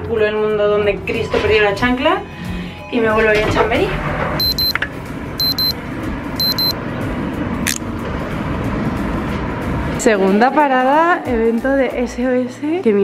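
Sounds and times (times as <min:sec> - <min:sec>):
road traffic: 0:04.3 - 0:10.5
short high double beep: 0:04.4 - 0:04.7, 0:05.4 - 0:05.8, 0:06.4 - 0:06.8.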